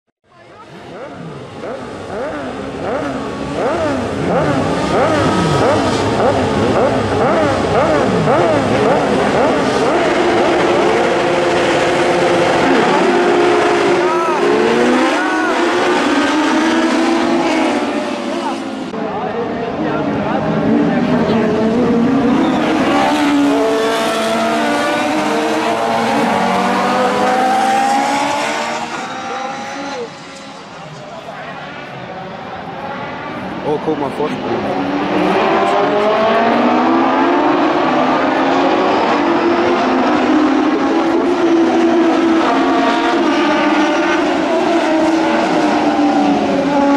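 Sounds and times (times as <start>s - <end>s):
race car engines revving: 0.3s - 46.9s.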